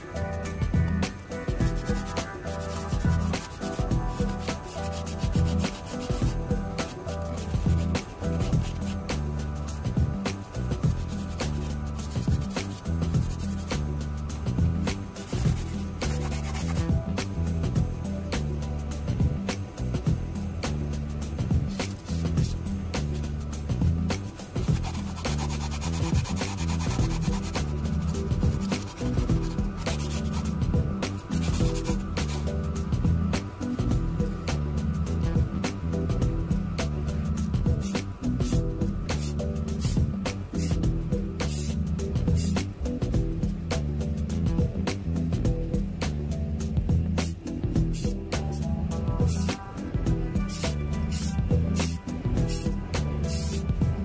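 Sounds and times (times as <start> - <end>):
background music: 0.0 - 54.0
sanding sponge scratching metal: 1.6 - 9.8, 10.8 - 13.9, 15.2 - 16.9, 24.4 - 32.6, 37.8 - 40.8.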